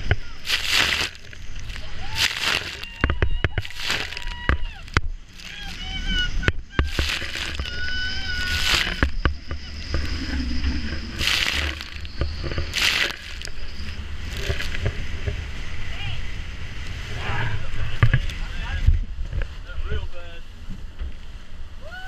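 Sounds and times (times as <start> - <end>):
wind rumbling on microphone: 0.0 - 22.0.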